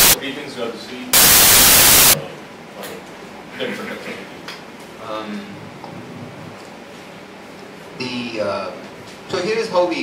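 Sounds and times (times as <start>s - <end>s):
loud electronic static hiss: 1.1s - 2.2s.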